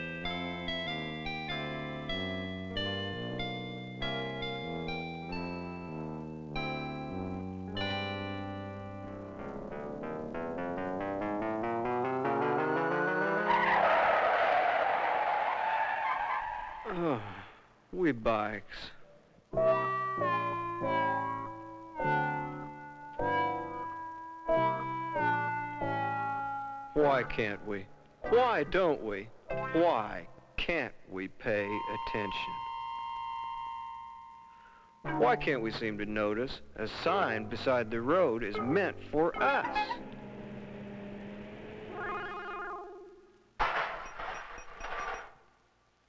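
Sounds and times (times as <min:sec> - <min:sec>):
keyboard music: 0:00.0 - 0:13.8, 0:19.6 - 0:30.0, 0:31.6 - 0:36.1, 0:37.2 - 0:43.3
car tyres screeching: 0:13.4 - 0:17.0.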